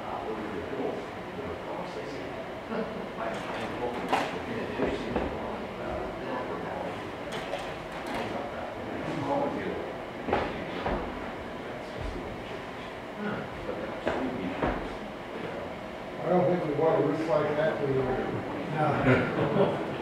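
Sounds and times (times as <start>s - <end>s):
low voices of an audience: 0.0s - 20.0s
slide projector changing slides: 3.3s - 4.5s, 7.1s - 8.4s.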